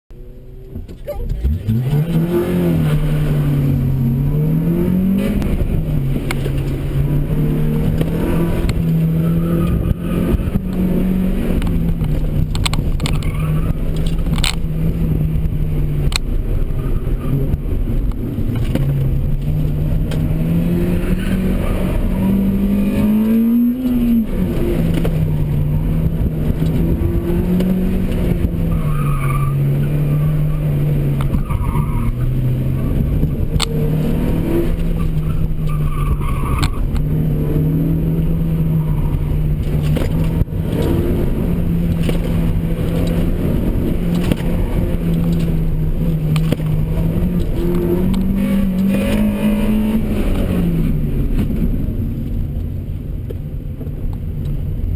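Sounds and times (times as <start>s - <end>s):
car engine revving: 0.1s - 54.9s
tyre squeals: 28.6s - 30.7s, 34.9s - 36.9s.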